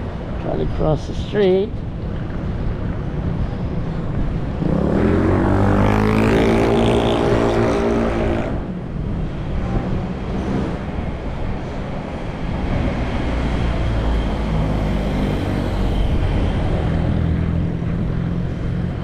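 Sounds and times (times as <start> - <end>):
street traffic rumble: 0.0 - 19.0
engine hum: 1.8 - 19.0.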